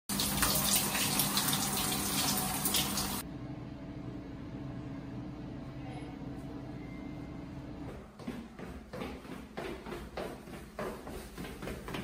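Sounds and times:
shower water running: 0.0 - 3.3.

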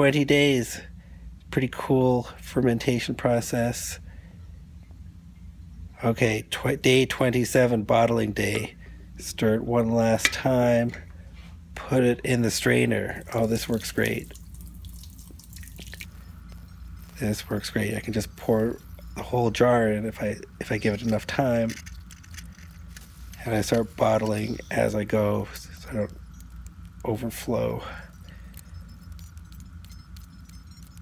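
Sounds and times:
steady low hum: 0.0 - 31.0
small drips and splashes: 13.2 - 17.3
liquid trickling into metal pot: 13.2 - 19.2
ladle and bottle clinking: 13.2 - 27.2.

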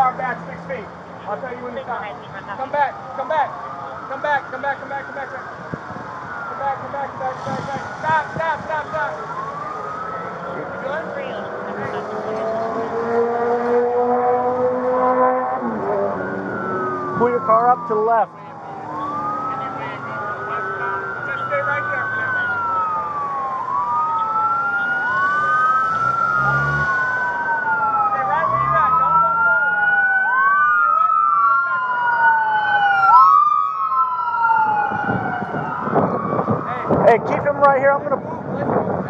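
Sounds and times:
emergency sirens wailing: 0.0 - 39.0
wind on microphone: 5.5 - 6.5, 7.2 - 8.8, 34.4 - 39.0.

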